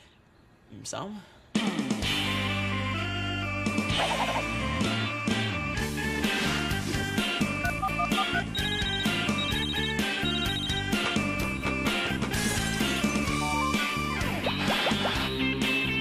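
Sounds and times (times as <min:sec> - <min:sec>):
theme song with drum beat: 0:03.7 - 0:16.0.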